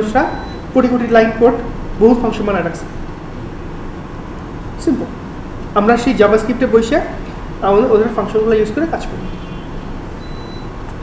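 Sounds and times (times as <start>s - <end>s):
low rumble with hiss: 0.0s - 11.0s.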